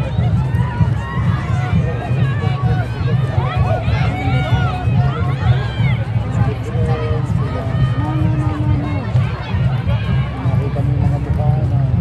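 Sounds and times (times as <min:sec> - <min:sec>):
crowd chattering and calling out: 0:00.0 - 0:12.0
loud crowd shouts: 0:00.0 - 0:12.0
low crowd rumble: 0:00.0 - 0:12.0.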